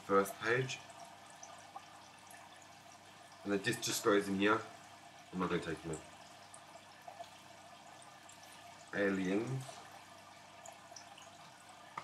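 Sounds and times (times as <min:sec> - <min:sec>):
faint hiss: 0:08.4 - 0:10.0.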